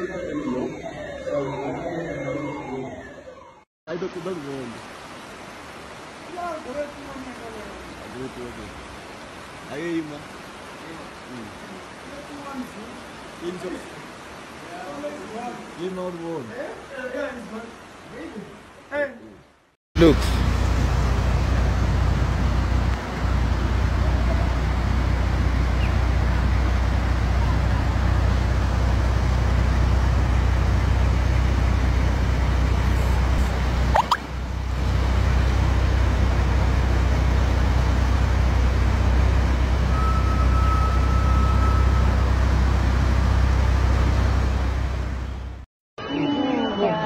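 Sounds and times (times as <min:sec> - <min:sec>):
river rushing roar: 0:04.1 - 0:18.8.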